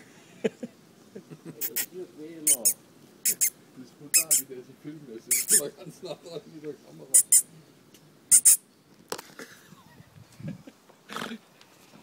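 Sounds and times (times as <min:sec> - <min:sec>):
hedgehog snuffling: 0:02.5 - 0:03.5, 0:04.1 - 0:04.4, 0:05.3 - 0:05.7.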